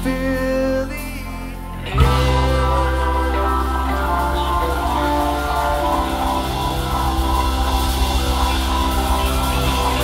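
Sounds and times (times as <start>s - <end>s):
bass guitar: 0.0s - 10.0s
drum kit: 0.0s - 10.0s
electric guitar: 0.0s - 10.0s
keyboard: 0.0s - 10.0s.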